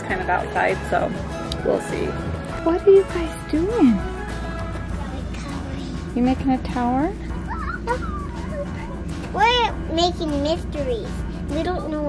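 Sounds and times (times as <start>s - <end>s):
background music: 0.0s - 12.0s
young child vocalizing: 7.4s - 9.0s.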